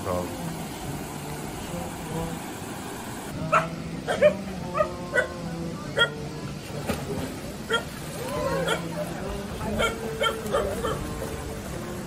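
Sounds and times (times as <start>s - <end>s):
dog barking in high yips: 3.5s - 5.3s.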